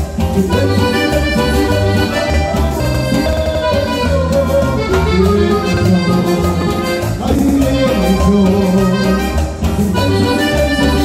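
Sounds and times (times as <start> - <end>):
accordion melody: 0.0 - 11.0
electric bass: 0.0 - 11.0.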